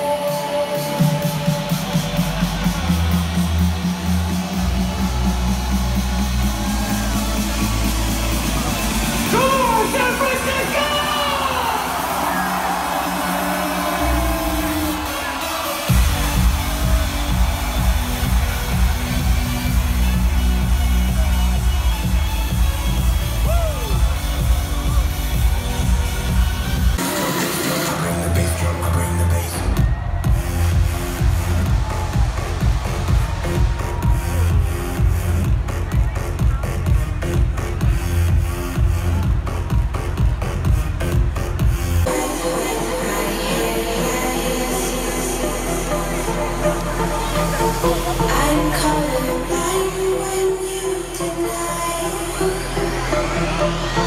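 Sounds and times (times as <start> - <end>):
loud electronic dance music: 0.0 - 54.0
crowd cheering: 0.3 - 54.0.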